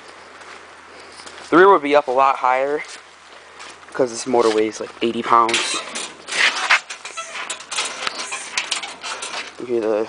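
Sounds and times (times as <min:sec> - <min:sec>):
suspension clicks and knocks: 0:05.4 - 0:09.9.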